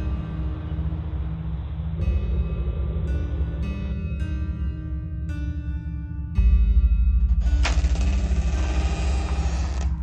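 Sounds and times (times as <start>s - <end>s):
deep rumbling drone: 0.0s - 10.0s.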